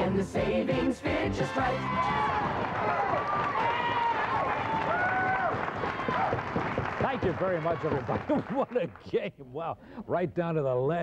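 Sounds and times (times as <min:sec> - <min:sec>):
audience clapping and cheering: 0:01.4 - 0:09.2
high whoops: 0:01.9 - 0:06.4.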